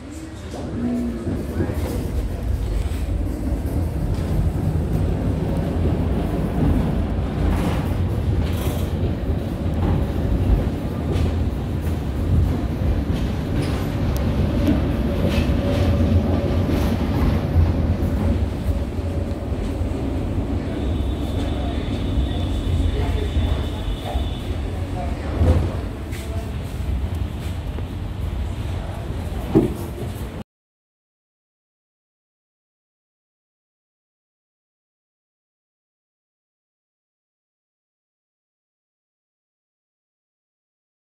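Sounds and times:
tram wheels rumbling: 0.0 - 30.4.

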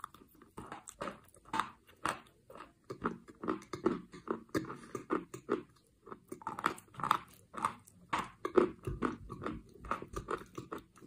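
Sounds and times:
chalk being chewed crunching: 0.0 - 11.0.

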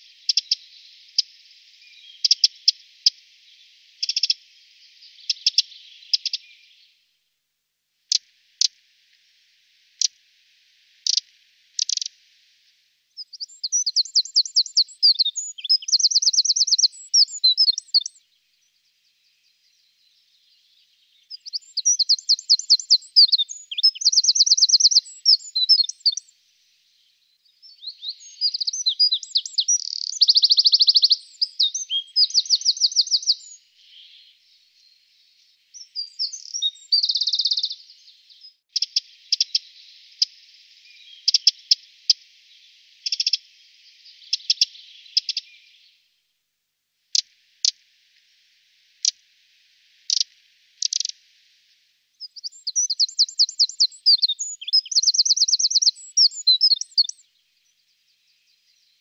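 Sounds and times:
wren singing rapid trills: 0.0 - 6.9, 11.0 - 12.2, 13.1 - 26.3, 26.9 - 46.0, 50.0 - 51.2, 52.2 - 59.0
sharp ticking bird calls: 0.0 - 7.0, 8.1 - 46.0, 47.1 - 59.0.

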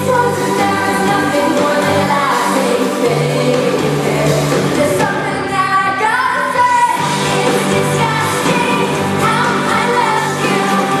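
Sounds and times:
live pop-rock band: 0.0 - 11.0
woman singing lead vocal: 0.0 - 11.0.

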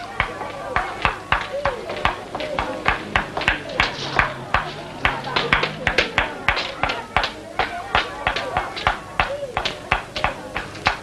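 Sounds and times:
hard shoes on stone stairs: 0.0 - 11.0.

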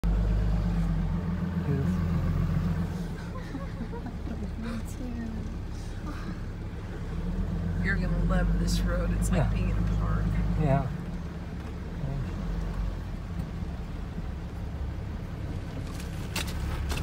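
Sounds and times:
truck engine and road noise: 0.0 - 17.0.

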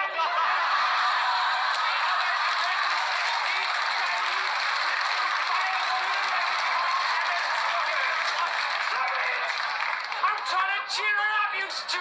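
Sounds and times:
audience applauding: 0.7 - 10.8.

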